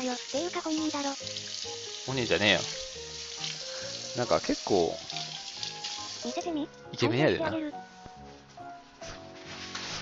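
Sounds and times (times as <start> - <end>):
sauce sizzling in a pan: 0.0 - 6.7.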